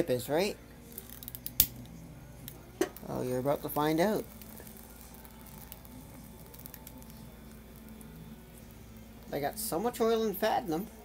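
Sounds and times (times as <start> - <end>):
chip crackling as it burns: 0.0 - 11.0.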